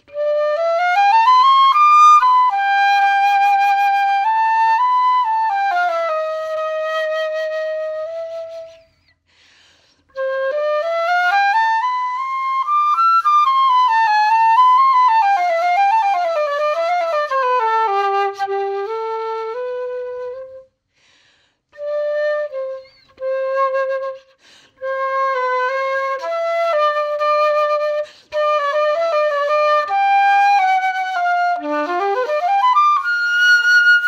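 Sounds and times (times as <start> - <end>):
solo flute playing: 0.0 - 9.2, 10.0 - 20.8, 21.7 - 34.0.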